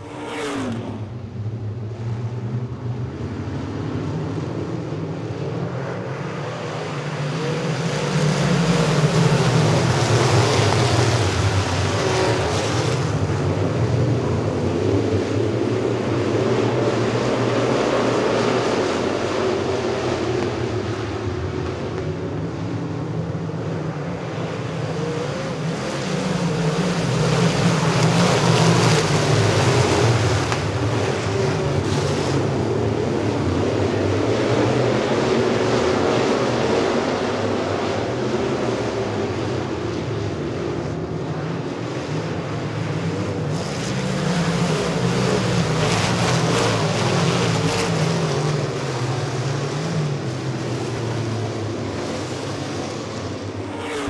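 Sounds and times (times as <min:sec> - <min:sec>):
racecar engines roaring: 0:00.0 - 0:54.0.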